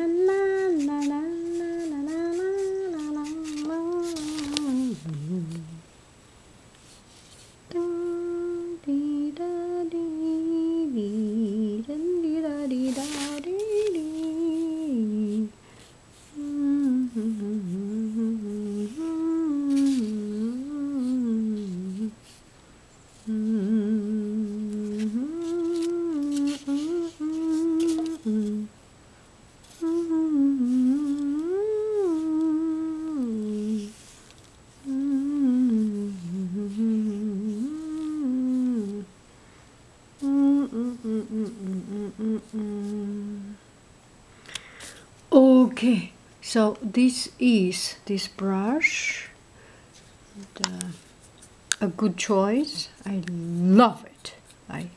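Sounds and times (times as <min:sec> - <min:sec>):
person humming a slow melody: 0:00.0 - 0:05.9, 0:07.7 - 0:22.4, 0:23.2 - 0:28.8, 0:29.7 - 0:34.2, 0:34.8 - 0:39.1, 0:40.2 - 0:43.6.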